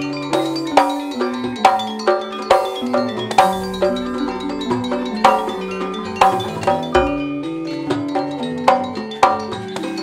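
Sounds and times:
ringing metal mallet instruments: 0.0 - 10.0
hand drum strokes: 2.8 - 8.0.

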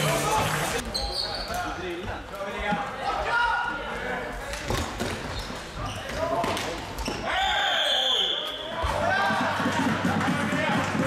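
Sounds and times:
referee's whistle blast: 7.4 - 8.8.

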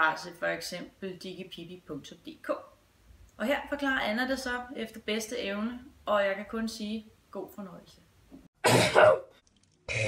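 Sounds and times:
person coughing: 8.6 - 9.3.

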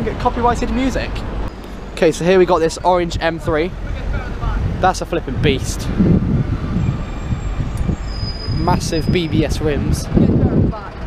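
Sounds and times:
car engine and exhaust rumble: 0.0 - 11.0.

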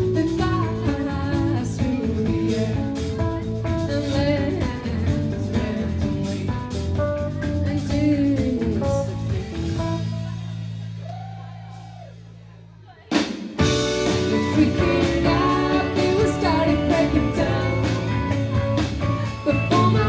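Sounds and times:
drum kit: 0.0 - 20.0
electric guitars: 13.6 - 20.0.

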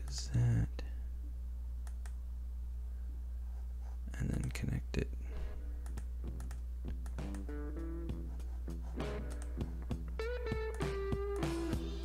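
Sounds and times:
low electrical hum: 0.0 - 12.0
guitar plucked notes: 6.2 - 8.4, 9.0 - 12.0.

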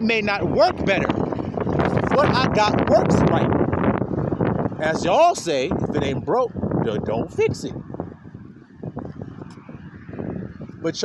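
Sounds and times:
man talking: 0.0 - 1.1, 2.0 - 3.5, 4.8 - 7.8.

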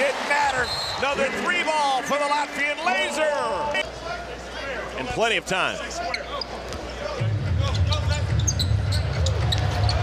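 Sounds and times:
crowd noise: 0.0 - 10.0
shoe squeaks: 8.3 - 10.0.

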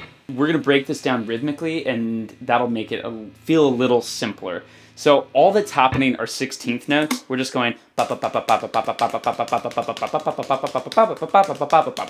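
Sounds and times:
man singing rapid syllables: 0.5 - 12.0.

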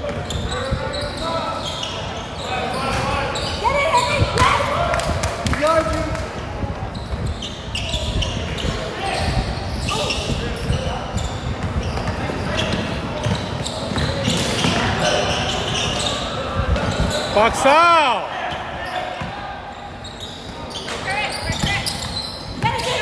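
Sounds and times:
sneaker squeaks: 0.0 - 4.7, 6.8 - 17.5, 18.4 - 23.0.

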